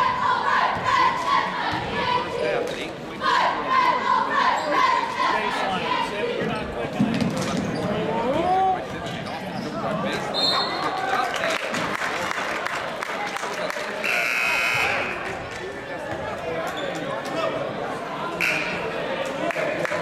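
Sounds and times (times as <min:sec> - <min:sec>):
spectators' voices: 0:00.0 - 0:20.0
referee's whistle: 0:14.0 - 0:15.2, 0:18.4 - 0:18.8.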